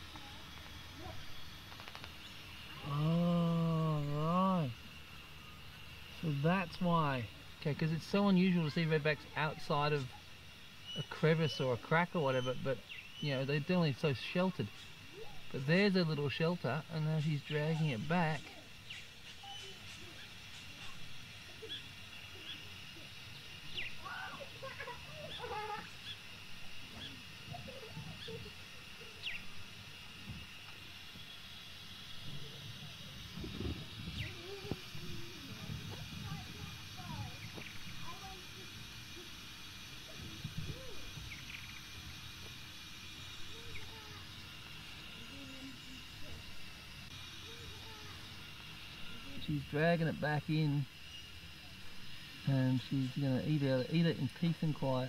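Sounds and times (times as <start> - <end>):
steady high hiss: 0.0 - 55.0
faint indistinct voices: 13.5 - 49.6.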